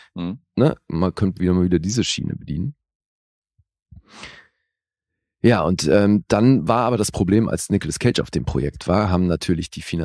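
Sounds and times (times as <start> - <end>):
person sighing: 4.0 - 4.5.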